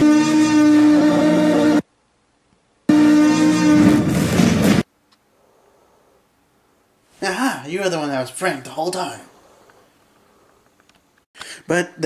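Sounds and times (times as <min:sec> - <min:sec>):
loud horn blaring: 0:00.0 - 0:01.9, 0:02.9 - 0:04.3.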